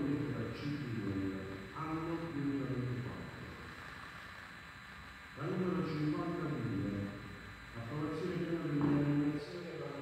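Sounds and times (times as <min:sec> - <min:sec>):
microphone hiss: 0:00.0 - 0:10.0.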